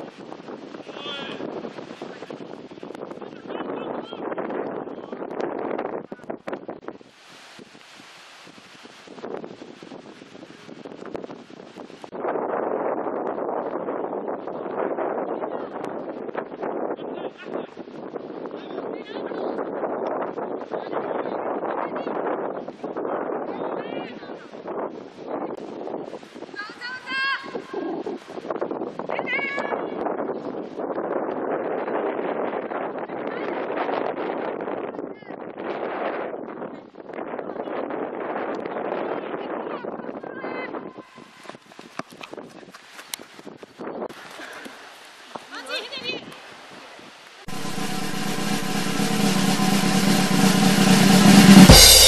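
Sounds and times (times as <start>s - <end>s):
wind noise on microphone: 0.0s - 44.7s.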